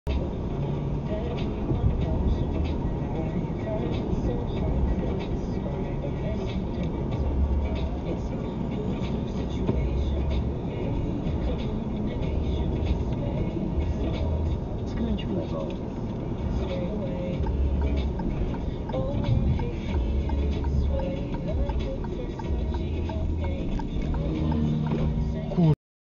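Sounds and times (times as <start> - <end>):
road and engine noise inside car: 0.1 - 25.8.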